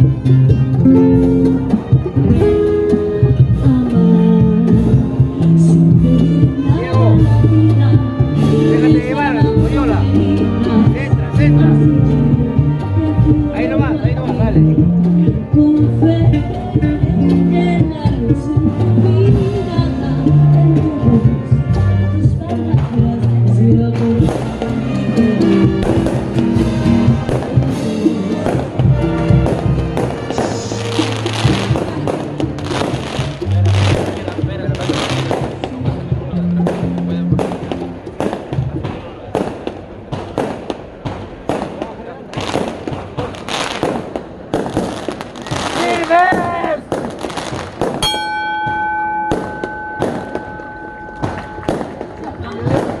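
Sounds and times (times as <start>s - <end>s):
band music with bass: 0.0s - 53.0s
firework bangs and crackles: 25.8s - 48.1s, 49.3s - 53.0s
steady high tone: 48.0s - 52.6s.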